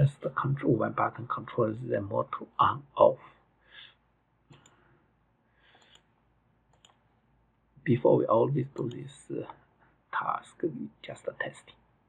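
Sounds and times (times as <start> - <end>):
faint computer mouse clicks: 4.5 - 4.8, 5.7 - 6.1, 6.7 - 7.0.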